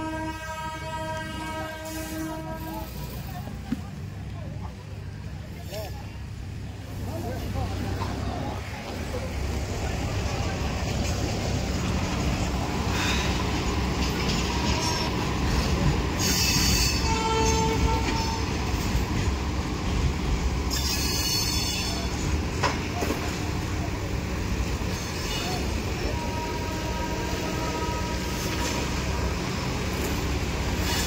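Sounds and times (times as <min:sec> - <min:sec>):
brief squeal: 0:20.7 - 0:22.1.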